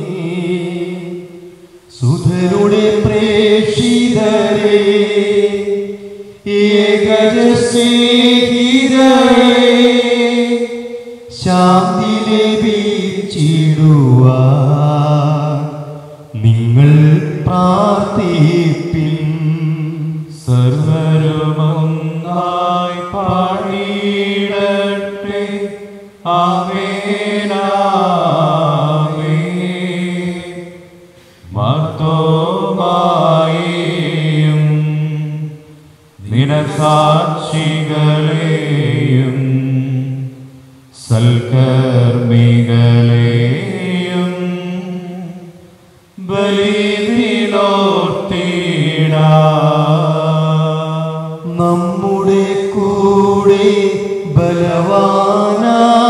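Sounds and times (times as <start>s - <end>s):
man chanting a sung prayer: 0.0s - 56.0s.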